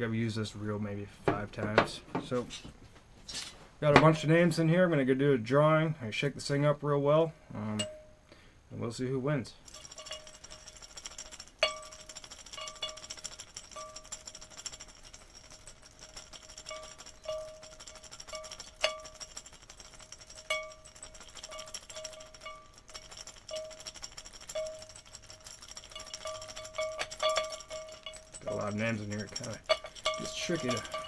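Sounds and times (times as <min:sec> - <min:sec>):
paper slips rattling in container: 0:09.6 - 0:31.0.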